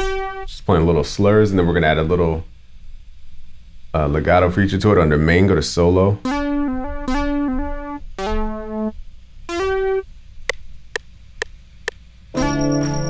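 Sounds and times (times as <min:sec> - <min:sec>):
synth lead notes: 0:00.0 - 0:00.6, 0:06.2 - 0:10.1, 0:12.4 - 0:13.0.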